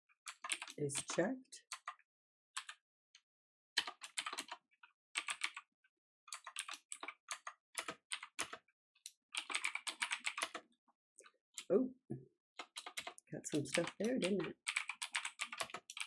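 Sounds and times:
computer keyboard typing: 0:00.3 - 0:02.0, 0:02.6 - 0:02.8, 0:03.8 - 0:04.6, 0:05.2 - 0:05.7, 0:06.3 - 0:10.7, 0:12.6 - 0:16.0.

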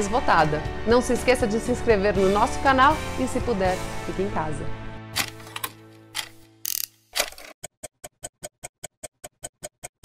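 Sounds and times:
clock mechanism clicks: 0:05.2 - 0:10.0.

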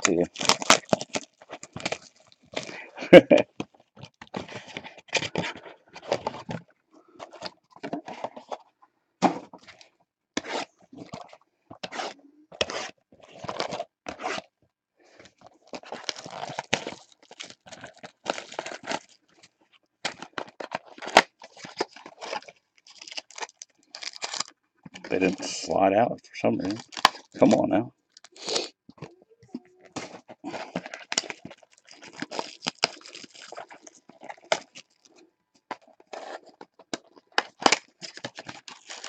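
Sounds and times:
cardboard scraping and tearing: 0:10.4 - 0:14.5, 0:36.0 - 0:36.6.

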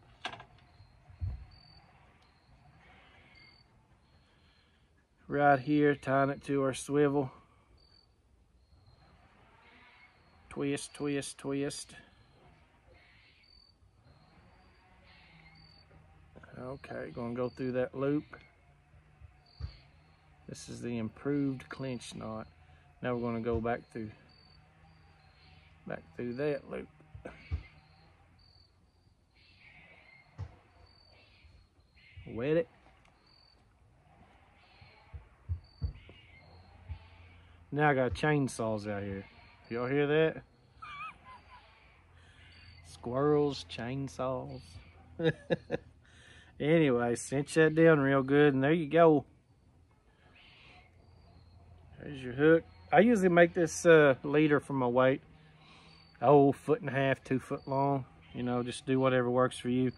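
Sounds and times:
faint high-pitched chirps: 0:00.0 - 0:06.4, 0:07.7 - 0:18.7, 0:55.4 - 0:58.5
high-pitched insect calls: 0:00.6 - 0:04.6, 0:12.1 - 0:23.2, 0:24.1 - 0:33.8, 0:34.6 - 0:37.6.

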